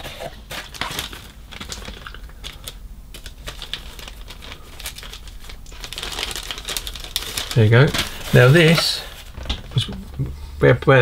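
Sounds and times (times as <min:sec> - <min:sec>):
plastic bags crinkling: 0:00.0 - 0:10.2.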